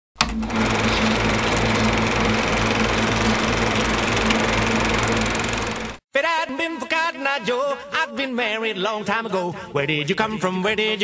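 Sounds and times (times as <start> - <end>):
film projector clatter and whirr: 0.2 - 6.0
low hum: 0.3 - 6.0.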